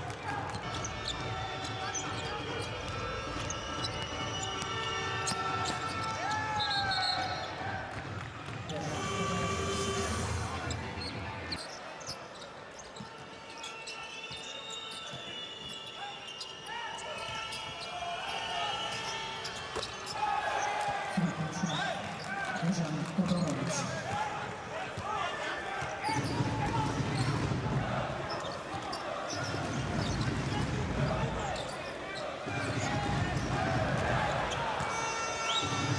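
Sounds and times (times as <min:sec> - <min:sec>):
crowd noise: 0:00.0 - 0:35.9
players' voices: 0:00.0 - 0:35.9.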